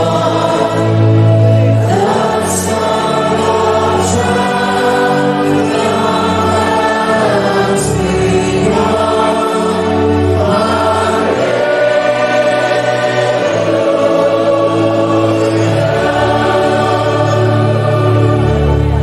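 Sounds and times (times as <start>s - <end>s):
congregation singing a hymn: 0.0s - 19.0s.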